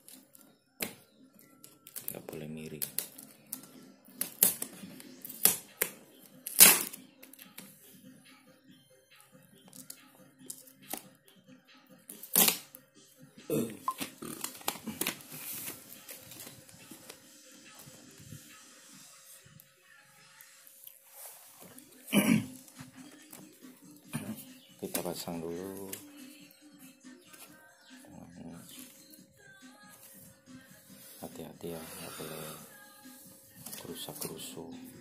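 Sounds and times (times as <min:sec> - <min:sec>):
cables crinkling: 0:01.6 - 0:05.8, 0:14.0 - 0:17.2.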